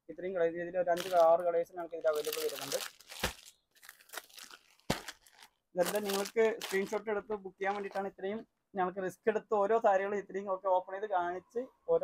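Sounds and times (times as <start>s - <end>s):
plastic packets crinkling: 0.9s - 8.1s
sharp plastic crackles: 1.0s - 8.1s.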